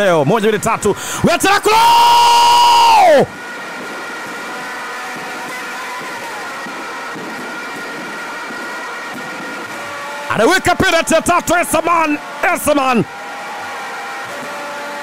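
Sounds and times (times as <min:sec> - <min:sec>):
man shouting: 0:00.0 - 0:03.3, 0:10.3 - 0:13.1
broadcast background din: 0:00.0 - 0:15.0.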